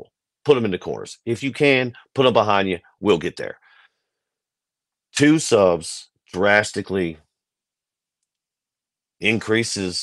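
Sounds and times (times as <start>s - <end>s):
man speaking: 0.0s - 3.6s, 5.1s - 7.3s, 9.2s - 10.0s.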